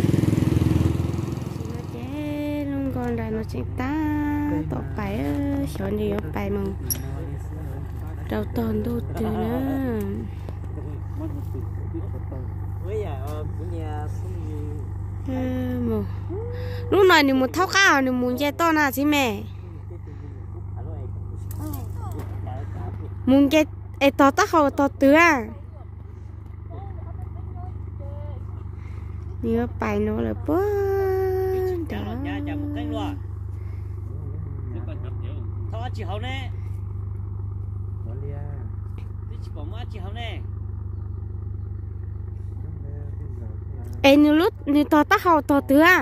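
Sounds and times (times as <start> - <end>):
boat engine droning: 0.0 - 46.0
voices talking quietly: 1.6 - 36.7, 41.1 - 46.0
person calling in long tones: 30.5 - 33.2.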